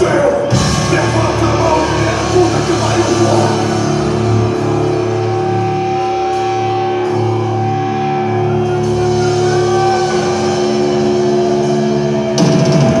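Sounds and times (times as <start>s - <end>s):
heavy metal band playing: 0.0s - 13.0s.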